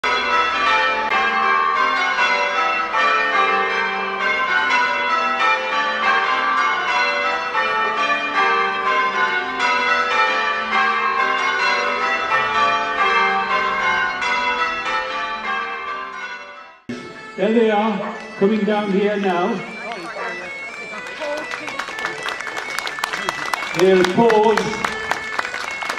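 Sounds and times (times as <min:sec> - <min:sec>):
tower bells ringing: 0:00.0 - 0:25.9.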